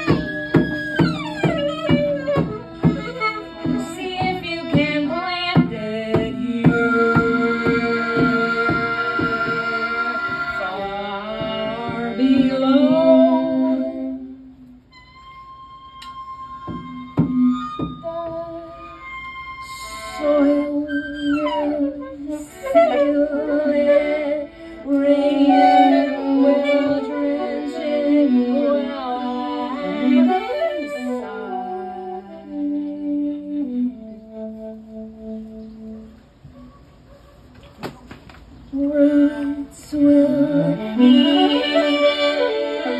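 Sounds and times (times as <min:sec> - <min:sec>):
violin and saxophone duo: 0:00.0 - 0:36.6, 0:38.7 - 0:42.9.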